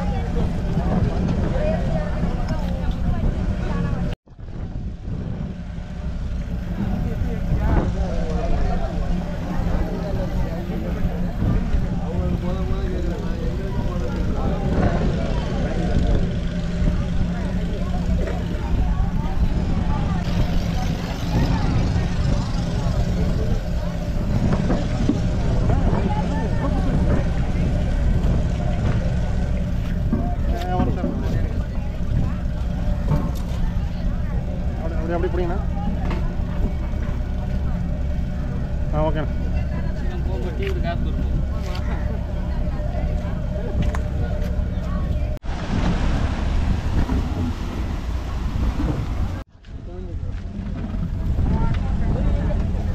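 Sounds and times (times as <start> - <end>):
engine humming: 0.0 - 52.9
men talking: 6.7 - 37.8, 38.5 - 45.3.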